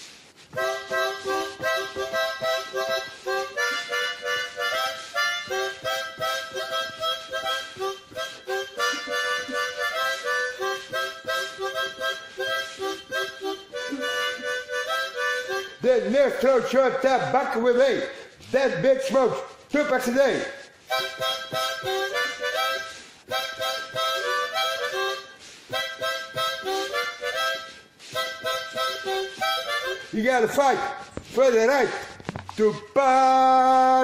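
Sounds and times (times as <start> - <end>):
harmonica playing chords: 0.0 - 16.7, 20.6 - 30.9.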